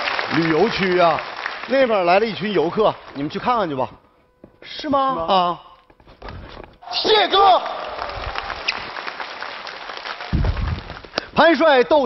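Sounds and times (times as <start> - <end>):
audience applauding: 0.0 - 3.2, 7.2 - 11.4
low rumbling thump: 10.4 - 10.9.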